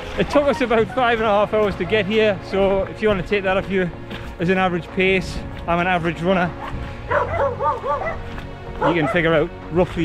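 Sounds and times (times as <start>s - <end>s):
background music: 0.0s - 10.0s
dog yipping: 6.6s - 8.2s, 8.8s - 9.3s.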